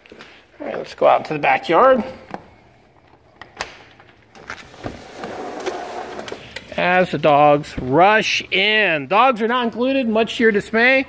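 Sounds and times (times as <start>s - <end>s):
glass door rolling along track: 4.6s - 6.5s.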